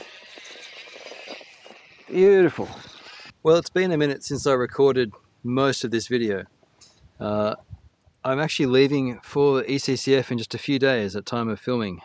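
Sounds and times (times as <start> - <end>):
electric motor spinning: 0.0 - 3.3.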